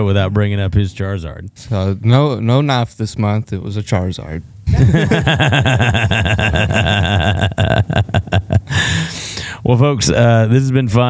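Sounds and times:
men laughing heartily: 0:04.7 - 0:09.2.

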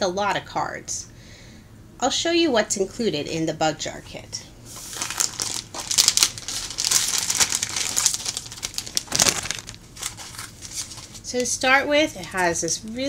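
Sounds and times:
plastic bags crinkling: 0:04.8 - 0:13.0.

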